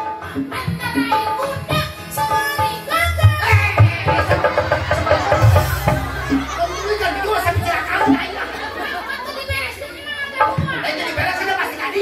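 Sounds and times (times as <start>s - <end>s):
low thumps: 3.8s - 9.8s.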